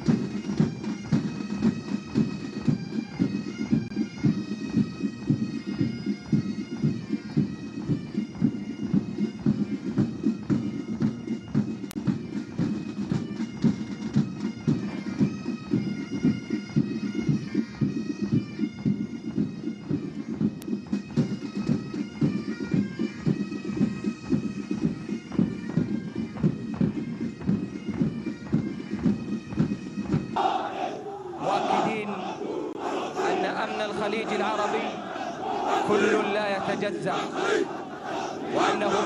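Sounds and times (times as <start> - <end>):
bagpipes playing melody: 0.0 - 30.4
men shouting in unison: 30.4 - 39.0.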